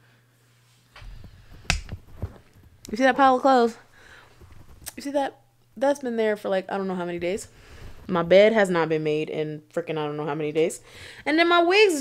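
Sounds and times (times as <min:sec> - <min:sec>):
camera handling rumble: 0:01.0 - 0:03.0, 0:04.3 - 0:05.0.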